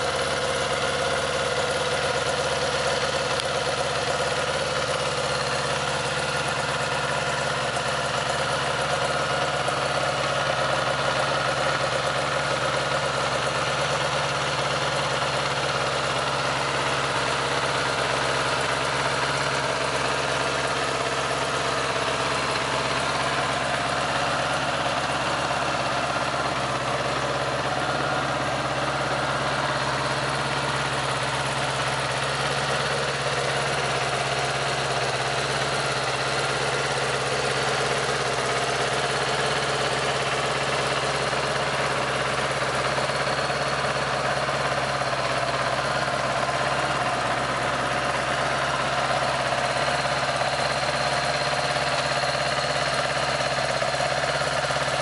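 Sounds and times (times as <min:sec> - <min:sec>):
motorcycle engine idling: 0:00.0 - 0:55.0.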